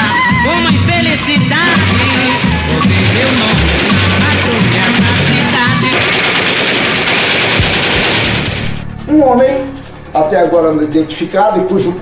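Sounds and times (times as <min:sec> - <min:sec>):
loud dense rattling noise: 0:00.0 - 0:11.4.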